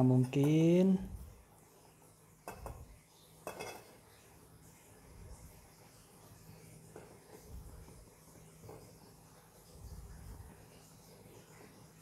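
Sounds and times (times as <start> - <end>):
metal cup clinking on basket rim: 3.4 - 4.0.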